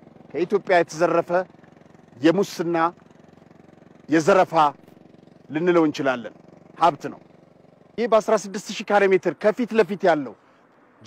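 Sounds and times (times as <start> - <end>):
man speaking: 0.3 - 1.5, 2.2 - 3.0, 4.1 - 4.8, 5.5 - 7.2, 8.0 - 10.4.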